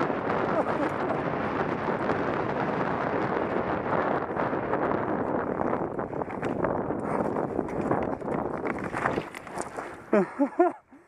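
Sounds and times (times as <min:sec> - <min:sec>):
bike rattling: 0:00.0 - 0:10.7
wind on microphone: 0:00.0 - 0:11.0
bike clattering over rocks: 0:06.2 - 0:10.0
tyres crunching over stones: 0:07.5 - 0:10.1.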